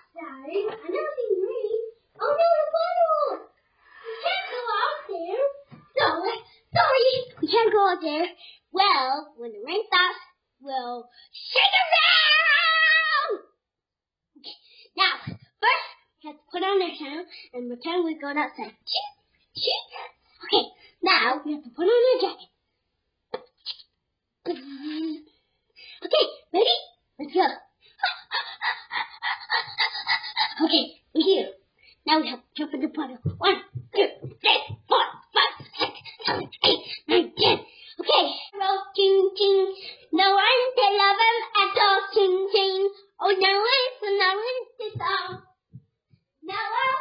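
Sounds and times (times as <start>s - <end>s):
child making vocal sounds: 0.0s - 7.2s, 27.5s - 31.4s
child's high-pitched voice: 0.0s - 13.6s, 14.4s - 22.6s, 26.0s - 45.6s, 46.4s - 47.0s.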